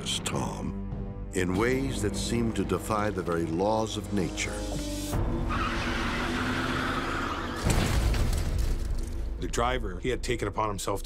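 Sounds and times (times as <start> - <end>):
background music: 0.0 - 11.0
tyres screeching: 4.6 - 8.0.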